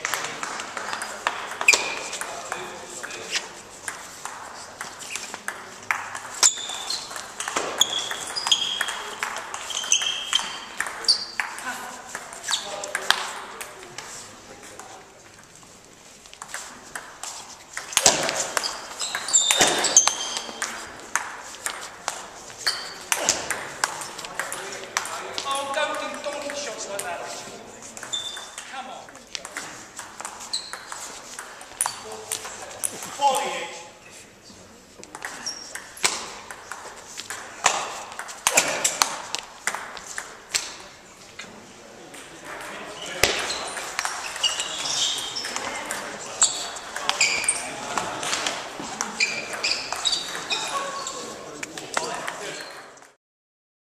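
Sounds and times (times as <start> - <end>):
table tennis balls clicking: 0.0 - 15.6, 16.2 - 33.4, 35.0 - 40.9, 42.1 - 53.2
play at nearby tables: 0.0 - 53.2
table tennis ball clicking: 3.9 - 13.7.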